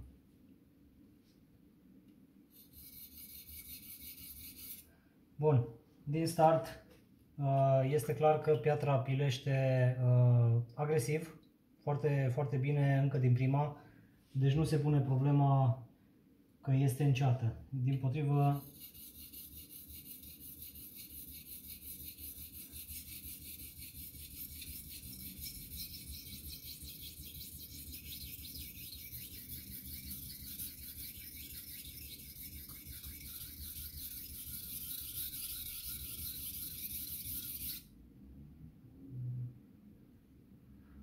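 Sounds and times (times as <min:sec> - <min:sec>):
knife rasping on wet whetstone: 0:02.6 - 0:04.9, 0:18.6 - 0:37.8.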